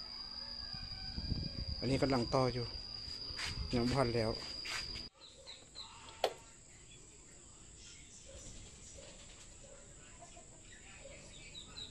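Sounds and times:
high-pitched insect trill: 0.0 - 5.1
faint chirps: 0.0 - 11.9.

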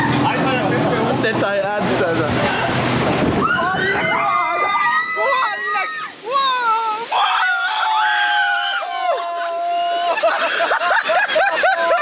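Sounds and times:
water splashing over boat: 0.0 - 12.0
riders screaming: 3.3 - 10.3
people laughing: 9.1 - 12.0.

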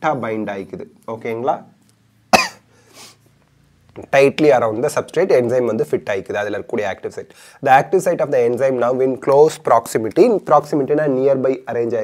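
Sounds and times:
man coughing: 2.3 - 2.7
faint breath: 7.3 - 7.6.

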